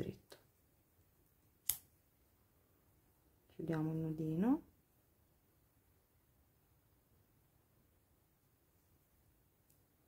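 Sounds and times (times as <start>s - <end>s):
scissors snipping yarn: 1.6s - 1.9s.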